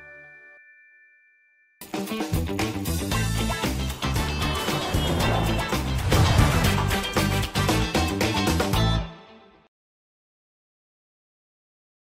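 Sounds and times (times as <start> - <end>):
chiming logo jingle: 0.0 - 2.0
loud music: 2.0 - 9.3.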